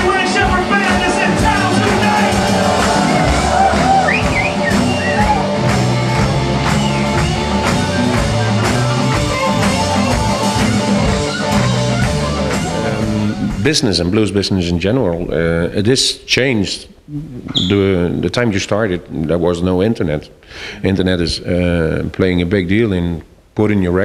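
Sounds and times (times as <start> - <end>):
electric guitars: 0.0 - 13.7
drum kit beat: 0.0 - 14.2
bass guitar: 0.0 - 15.4.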